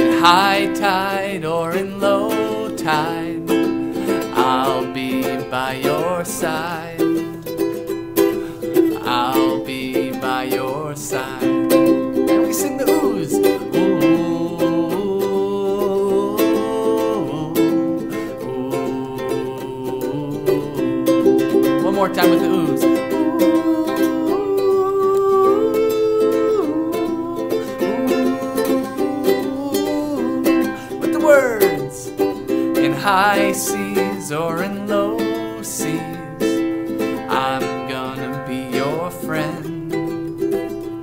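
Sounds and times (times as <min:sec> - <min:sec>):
person singing wordless ooh: 0:00.0 - 0:07.7, 0:08.3 - 0:41.0
ukulele strumming: 0:00.0 - 0:41.0.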